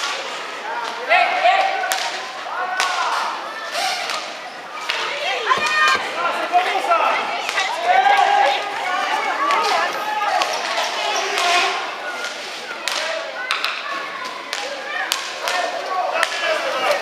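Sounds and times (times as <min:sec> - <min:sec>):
sticks clacking on ball and floor: 0:10.4 - 0:13.8.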